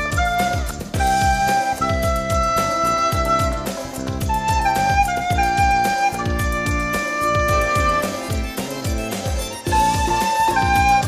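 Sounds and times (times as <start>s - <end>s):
backing track with drum beat: 0.0s - 11.0s
recorder melody: 0.0s - 11.0s.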